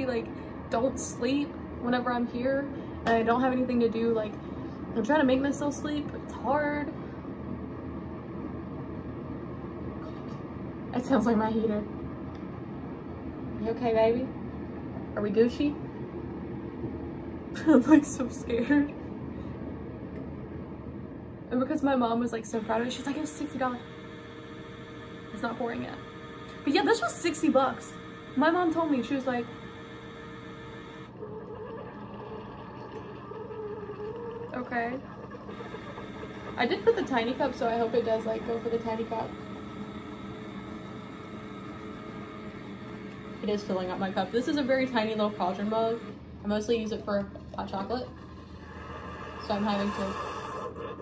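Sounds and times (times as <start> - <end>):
coffee maker whirring hum: 0.0 - 51.0.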